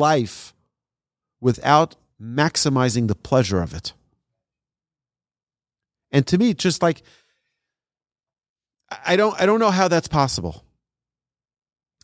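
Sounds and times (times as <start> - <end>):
man talking: 0.0 - 0.6, 1.4 - 4.0, 6.1 - 7.1, 8.9 - 10.7
short breath: 7.0 - 7.8.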